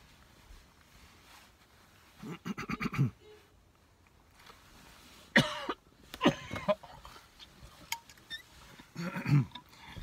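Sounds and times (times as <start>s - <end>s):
man coughing: 5.3s - 6.8s, 9.0s - 9.6s.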